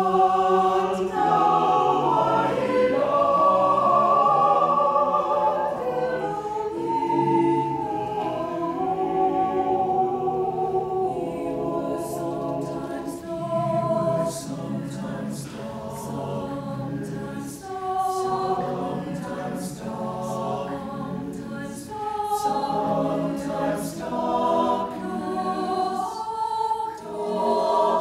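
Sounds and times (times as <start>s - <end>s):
mixed choir singing chords: 0.0s - 28.0s.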